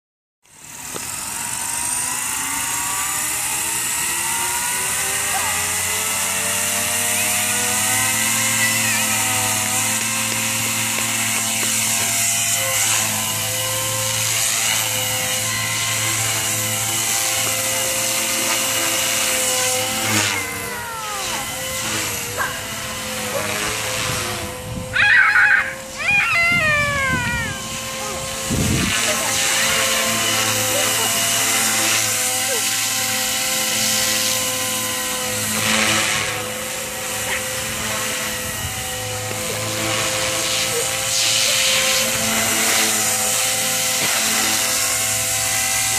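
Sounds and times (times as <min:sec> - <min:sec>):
model helicopter motor whine: 0:00.4 - 0:45.9.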